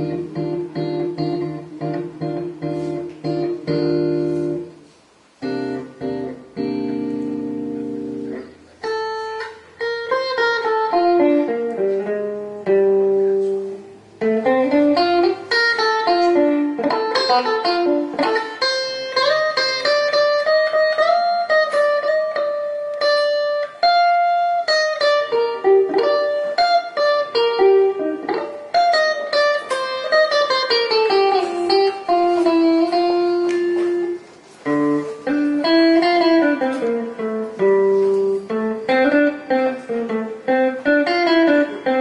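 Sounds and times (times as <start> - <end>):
solo electric guitar melody: 0.0 - 42.0.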